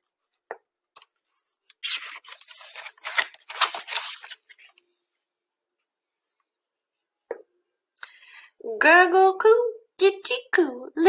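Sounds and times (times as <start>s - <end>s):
paper page rustling: 1.0s - 4.8s.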